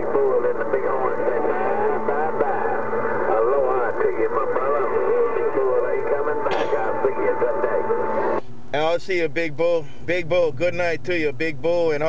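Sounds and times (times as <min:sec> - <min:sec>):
burst of radio static: 0:00.0 - 0:08.4
distorted voice over radio: 0:00.0 - 0:08.4.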